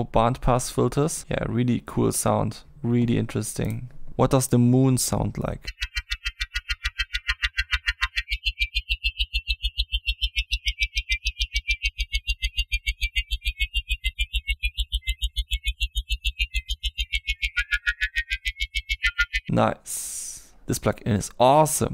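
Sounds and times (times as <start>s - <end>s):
glittering high electronic tones: 5.5s - 19.5s.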